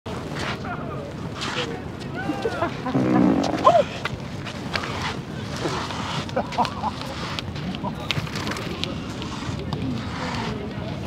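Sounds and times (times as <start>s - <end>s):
low buzzing fart: 2.9s - 3.8s.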